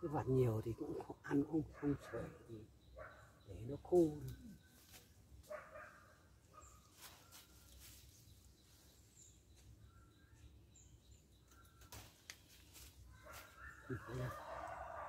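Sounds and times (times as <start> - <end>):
faint bird chirps: 1.3 - 15.0
soft rustles: 6.8 - 8.9, 11.9 - 13.6.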